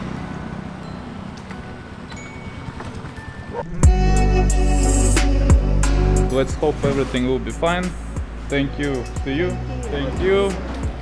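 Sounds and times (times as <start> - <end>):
motorbike engine idling: 0.0 - 4.4
loud music: 3.6 - 11.0.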